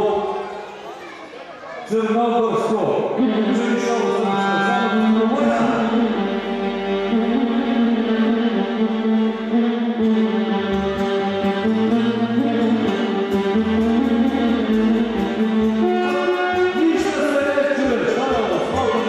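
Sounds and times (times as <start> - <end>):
violin melody: 3.1 - 19.0
bass notes: 3.2 - 19.0
live band music: 3.2 - 19.0.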